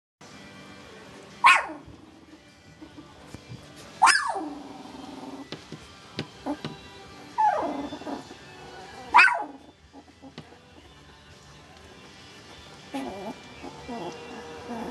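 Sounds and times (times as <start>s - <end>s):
puppy yelping: 1.4s - 1.8s, 4.0s - 4.8s, 7.3s - 10.4s, 12.9s - 14.9s.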